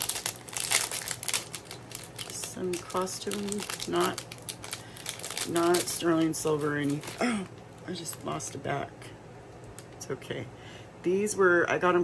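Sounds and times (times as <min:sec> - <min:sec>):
packaging crinkling: 0:00.0 - 0:08.5.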